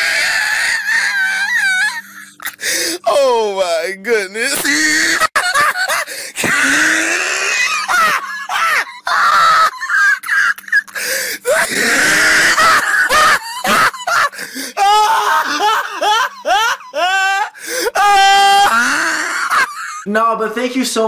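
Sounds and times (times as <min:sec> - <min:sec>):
man laughing hard: 0:04.6 - 0:20.1.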